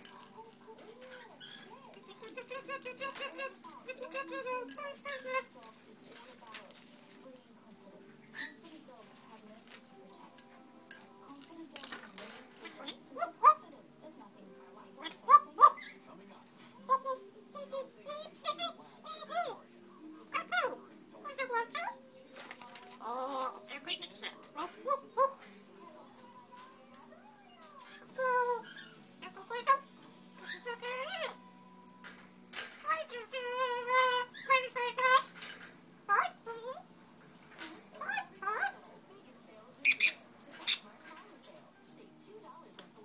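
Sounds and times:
parrot yelping: 0:01.0 - 0:05.6, 0:12.7 - 0:13.7, 0:15.0 - 0:16.0, 0:16.8 - 0:19.6, 0:20.3 - 0:22.0, 0:23.0 - 0:25.5, 0:27.1 - 0:31.4, 0:32.8 - 0:35.4, 0:36.0 - 0:36.9, 0:37.9 - 0:38.9, 0:39.8 - 0:40.8
parrot whistled calls: 0:39.8 - 0:40.8.

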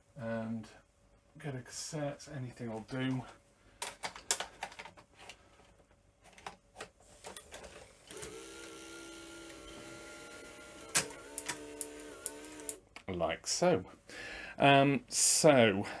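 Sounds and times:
small motor whine: 0:08.0 - 0:12.8.

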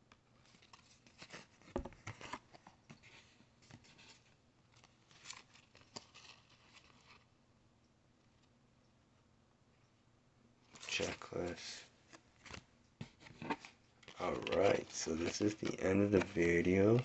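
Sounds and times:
cards rustling and flicking: 0:10.7 - 0:17.0.

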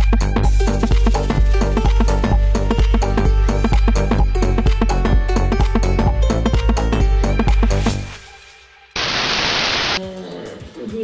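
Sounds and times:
background music: 0:00.0 - 0:09.0, 0:10.0 - 0:11.0
static hiss: 0:09.0 - 0:10.0.

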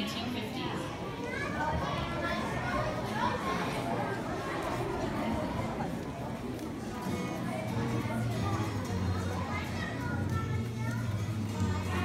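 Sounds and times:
children chattering in a hall: 0:00.0 - 0:12.0.

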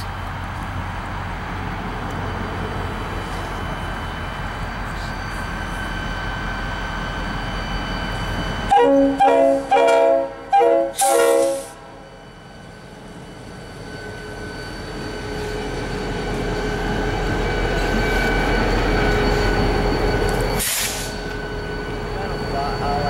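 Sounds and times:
diesel locomotive rumble: 0:00.0 - 0:23.0
locomotive horn blast: 0:08.7 - 0:11.8
short hiss: 0:20.6 - 0:21.2.

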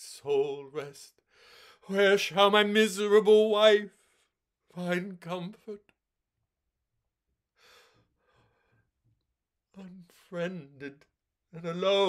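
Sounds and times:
man breathing in through mouth: 0:01.3 - 0:01.8, 0:07.6 - 0:08.9.

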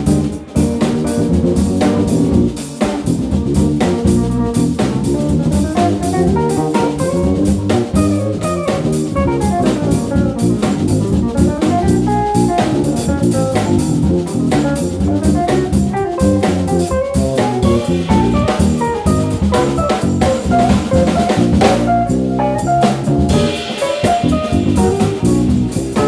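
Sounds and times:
drums and cymbals: 0:00.0 - 0:26.0
electric bass: 0:00.0 - 0:26.0
electric guitar melody: 0:00.0 - 0:26.0.

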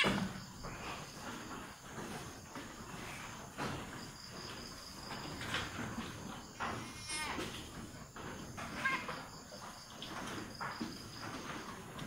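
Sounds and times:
goat bleating: 0:06.8 - 0:07.5, 0:08.7 - 0:09.2.

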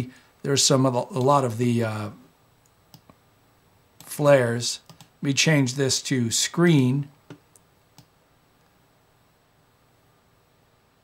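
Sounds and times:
computer mouse clicks: 0:02.6 - 0:03.2, 0:04.8 - 0:05.2, 0:07.3 - 0:08.1.

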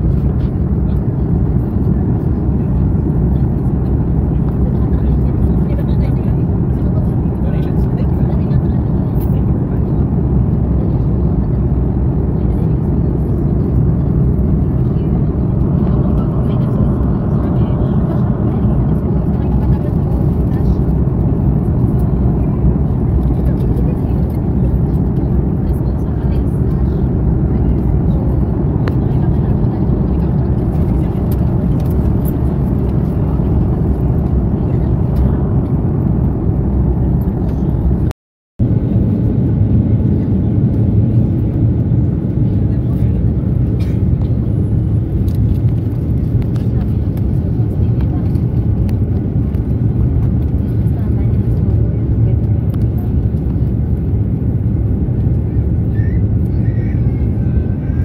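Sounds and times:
airliner cabin engine drone: 0:00.0 - 0:58.0.

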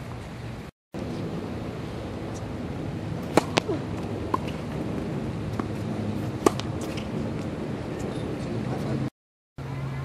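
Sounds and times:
steady background noise: 0:00.0 - 0:10.0
tennis ball struck with racket: 0:03.2 - 0:07.5.

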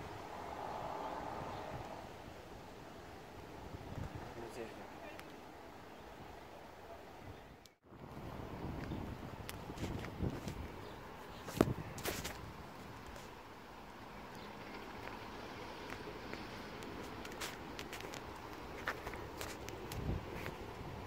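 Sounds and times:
light footsteps: 0:15.8 - 0:20.8.

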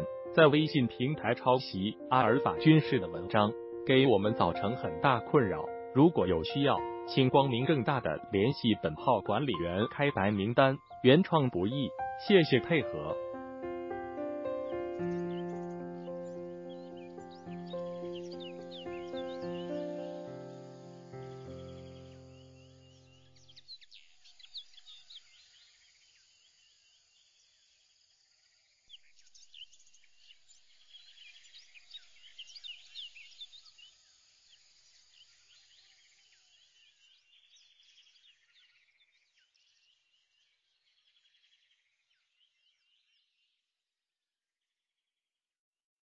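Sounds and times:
background music: 0:00.0 - 0:23.0
birds chirping: 0:00.0 - 0:25.7.

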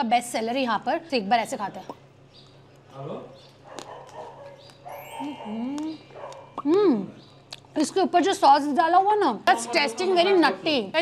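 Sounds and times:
dog bark-like call: 0:03.7 - 0:05.6.

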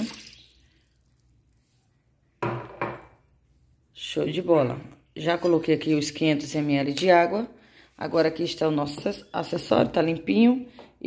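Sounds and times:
glass cup knocking on hard surface: 0:02.4 - 0:03.2.

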